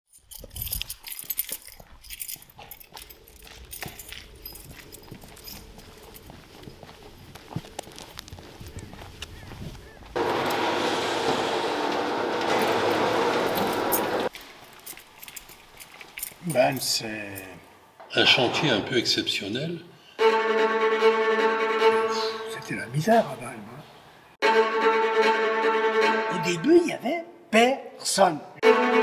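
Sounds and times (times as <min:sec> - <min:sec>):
metallic clicks and clinks: 0:00.1 - 0:06.4, 0:13.9 - 0:17.5
loud steady rushing noise: 0:10.2 - 0:14.3.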